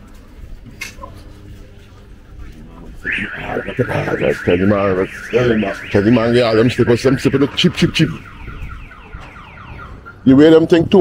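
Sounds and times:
car alarm electronic chirps: 3.0s - 10.4s.

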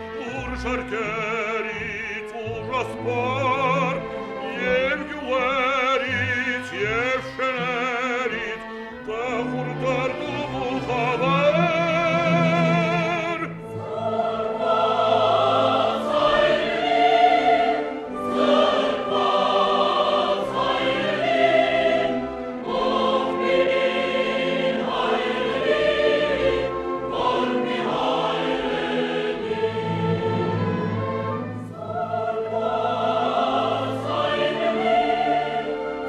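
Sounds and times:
choir singing: 0.0s - 36.0s
symphony orchestra playing: 0.0s - 36.0s.

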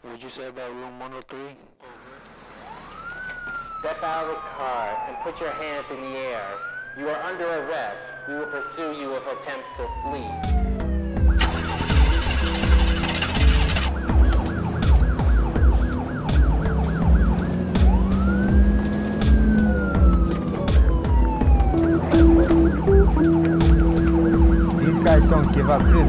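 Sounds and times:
police sirens yelping: 2.0s - 26.0s
siren wail rising and falling: 2.5s - 26.0s
dramatic music with pulsing bass: 10.2s - 26.0s.

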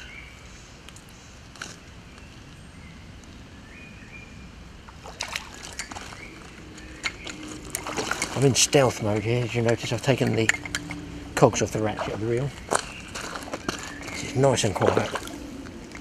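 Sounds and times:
low outdoor background: 0.0s - 16.0s
fish splashing at water surface: 5.0s - 6.2s, 7.3s - 8.7s, 14.6s - 15.5s.

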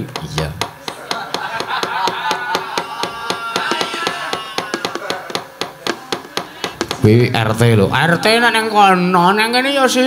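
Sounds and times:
gamelan knocking strokes: 0.1s - 7.1s.

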